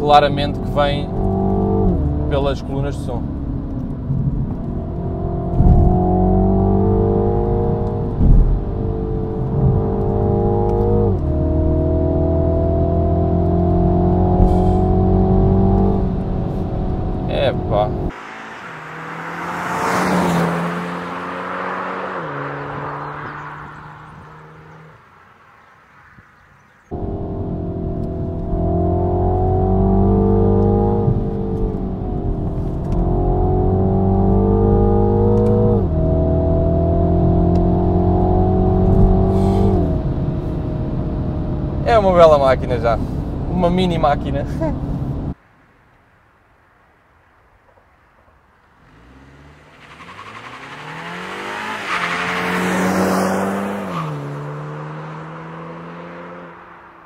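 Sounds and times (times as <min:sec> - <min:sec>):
car engine accelerating through gears: 0:00.2 - 0:25.0, 0:26.9 - 0:45.4, 0:48.9 - 0:57.0
car rushing past: 0:01.0 - 0:26.2, 0:26.8 - 0:40.7, 0:48.8 - 0:57.0.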